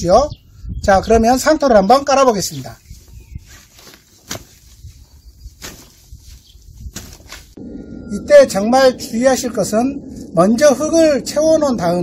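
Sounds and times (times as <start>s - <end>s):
fabric bag rustling: 2.9s - 7.6s.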